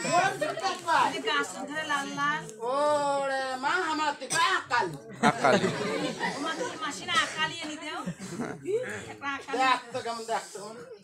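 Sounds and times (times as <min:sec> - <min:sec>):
chatter: 0:00.0 - 0:11.0.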